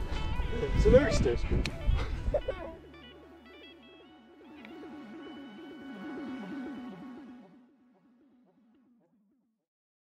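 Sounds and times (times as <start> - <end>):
electronic music with pulsing figure: 1.7 - 9.6.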